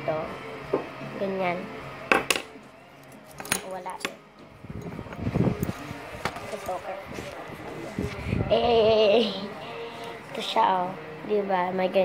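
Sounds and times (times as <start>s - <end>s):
metal medals handling noise: 3.0s - 4.1s.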